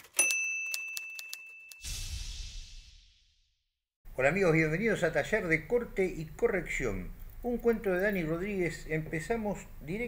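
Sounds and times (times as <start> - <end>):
typewriter bell ding: 0.0 - 1.9.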